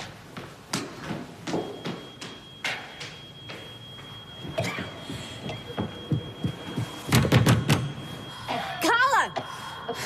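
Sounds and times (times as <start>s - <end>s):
footsteps running up stairs: 0.2s - 7.9s
smoke alarm tone: 1.5s - 10.0s.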